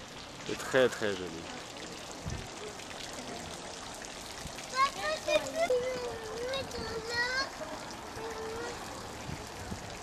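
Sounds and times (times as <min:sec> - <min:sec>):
water running in fountain: 0:00.0 - 0:10.0
young child calling out: 0:04.7 - 0:07.6, 0:08.2 - 0:09.1.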